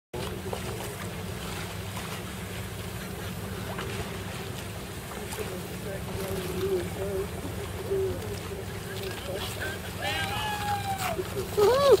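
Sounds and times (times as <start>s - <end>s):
boat engine rumble: 0.1s - 12.0s
wind: 0.1s - 12.0s
faint splashes: 0.2s - 12.0s
water rushing: 0.2s - 12.0s.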